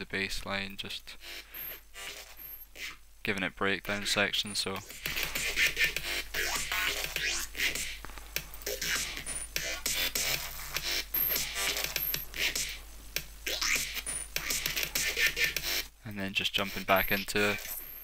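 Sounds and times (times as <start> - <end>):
glitch hop electronic beat: 3.9 - 15.9, 16.6 - 17.8.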